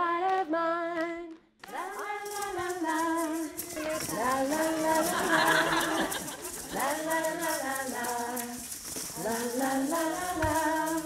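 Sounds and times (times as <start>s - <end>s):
adult and children's voices singing: 0.0s - 11.0s
woman leading group singing: 0.0s - 11.0s.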